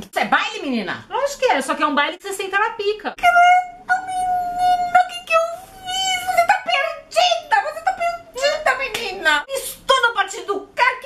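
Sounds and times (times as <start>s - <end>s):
sharp clap: 8.9s - 9.1s.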